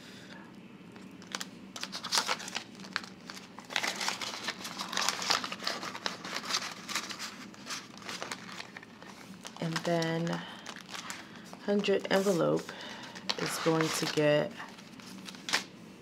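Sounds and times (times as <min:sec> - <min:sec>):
paper money and plastic rustling: 0:01.0 - 0:15.7.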